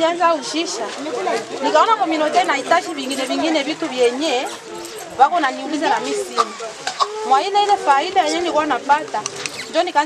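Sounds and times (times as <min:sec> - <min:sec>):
woman talking: 0:00.0 - 0:01.0, 0:01.6 - 0:06.6, 0:07.2 - 0:10.0.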